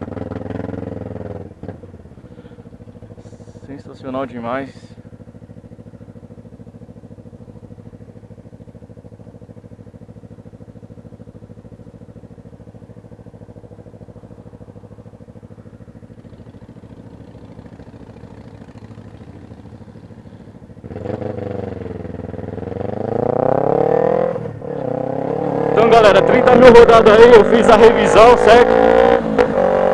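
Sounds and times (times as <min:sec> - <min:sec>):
motorcycle engine idling: 0:00.0 - 0:28.5
motorcycle engine revving: 0:00.0 - 0:29.9.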